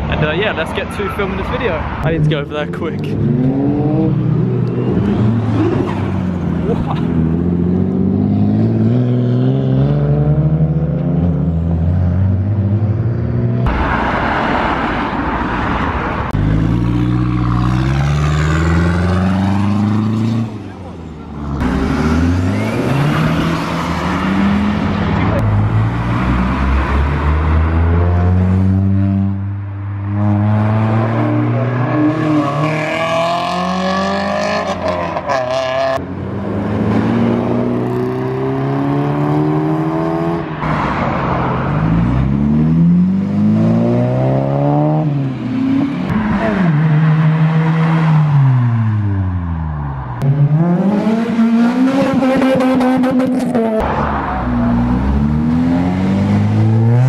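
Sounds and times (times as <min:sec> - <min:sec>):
cars accelerating past: 0:01.8 - 0:57.0.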